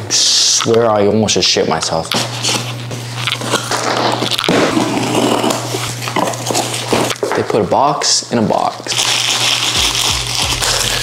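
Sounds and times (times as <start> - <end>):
steady low hum: 0.0 - 11.0
box cutter slicing cardboard: 3.4 - 7.2.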